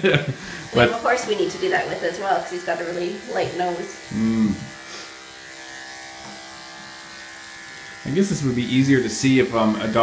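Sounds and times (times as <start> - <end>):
electric clippers buzzing: 0.4 - 10.0.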